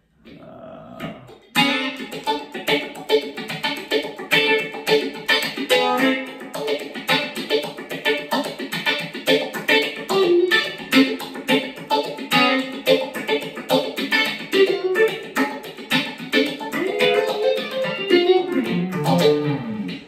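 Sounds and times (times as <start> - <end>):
choppy funk electric guitar strums: 1.0 - 20.0.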